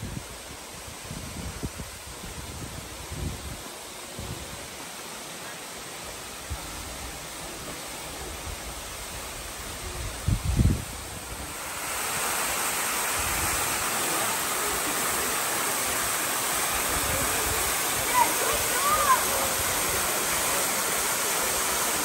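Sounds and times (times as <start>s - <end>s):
waterfall rushing: 0.0s - 22.0s.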